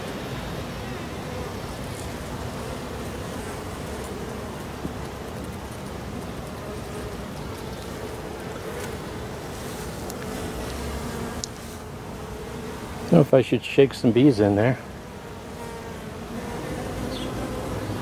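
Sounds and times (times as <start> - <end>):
bees humming around hive: 0.0 - 18.0.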